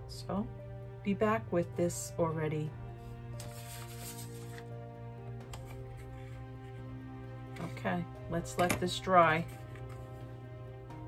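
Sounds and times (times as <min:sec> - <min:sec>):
soft sustained background music: 0:00.0 - 0:11.0
paper rustling: 0:03.4 - 0:04.7.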